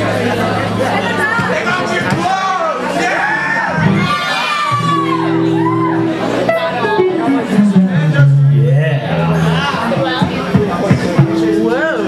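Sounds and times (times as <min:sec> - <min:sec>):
crowd talking and chatter: 0:00.0 - 0:12.0
keyboard playing held notes: 0:04.9 - 0:12.0.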